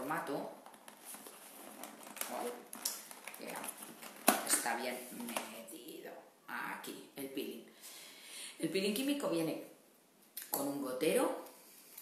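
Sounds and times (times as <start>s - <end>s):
packaging rustling: 0.6s - 5.5s.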